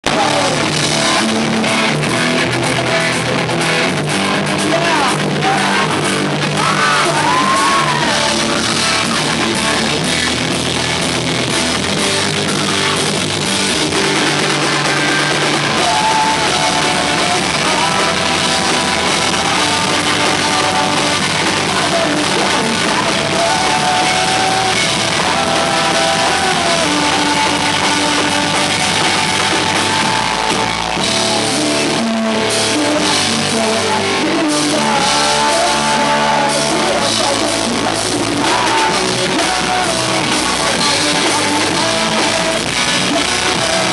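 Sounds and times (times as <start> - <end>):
man singing into a microphone: 0.0 - 3.6, 4.4 - 9.2, 15.1 - 29.2, 31.3 - 43.9
drum kit: 0.0 - 43.9
electric guitar: 0.0 - 43.9.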